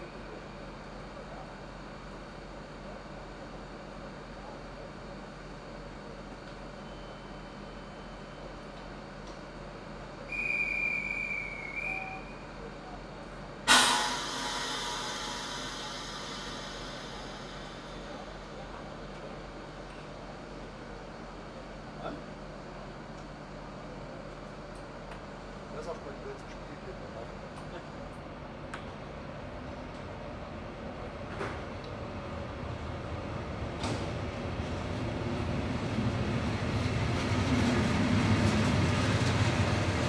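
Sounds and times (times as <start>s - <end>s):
train humming: 8.8s - 23.2s, 28.2s - 40.0s
train departure whistle: 10.3s - 12.5s
air brakes hissing: 13.7s - 19.1s.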